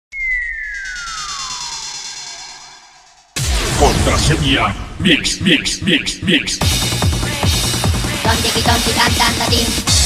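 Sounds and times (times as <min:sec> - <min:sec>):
shimmering high synth tones: 0:00.1 - 0:03.4
synthesizer tone gliding down: 0:00.1 - 0:04.0.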